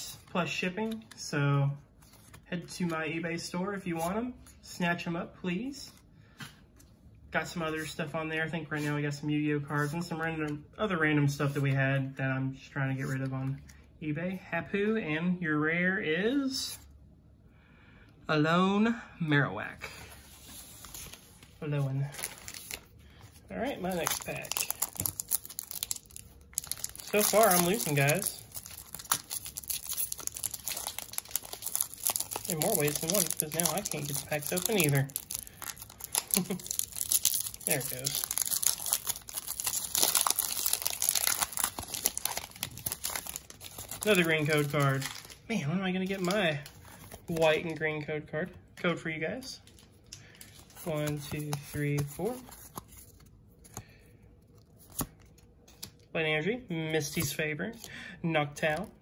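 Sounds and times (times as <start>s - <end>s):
trading cards rustling: 19.9s - 48.0s, 49.6s - 56.0s
foil wrapper crinkling: 22.1s - 45.4s.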